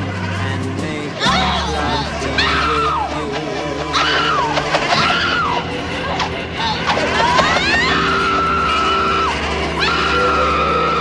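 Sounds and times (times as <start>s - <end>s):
low musical drone: 0.0s - 11.0s
woman screaming: 1.2s - 3.2s, 3.9s - 11.0s.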